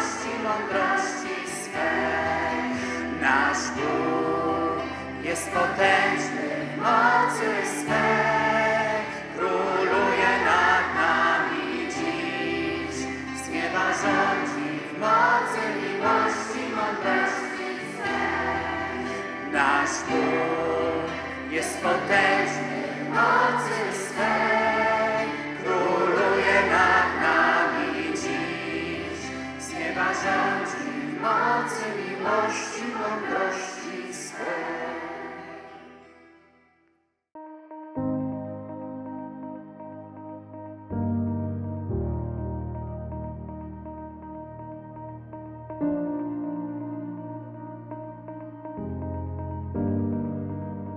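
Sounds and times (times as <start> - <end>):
choir singing a hymn: 0.0 - 36.4
acoustic guitar: 0.0 - 36.8.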